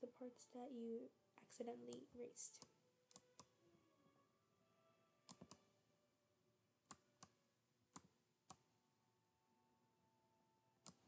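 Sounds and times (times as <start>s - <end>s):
computer mouse clicks: 1.9s - 3.5s, 5.3s - 5.6s, 6.9s - 8.6s.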